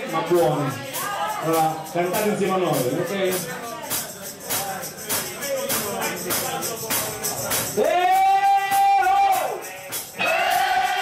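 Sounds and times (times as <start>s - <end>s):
light percussion: 0.0s - 11.0s.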